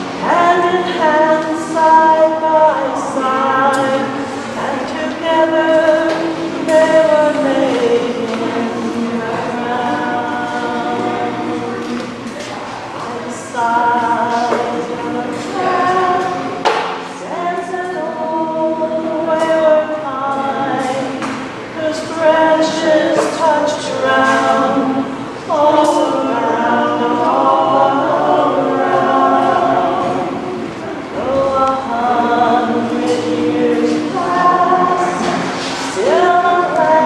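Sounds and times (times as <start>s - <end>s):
woman singing unaccompanied: 0.0s - 30.5s, 31.1s - 37.0s.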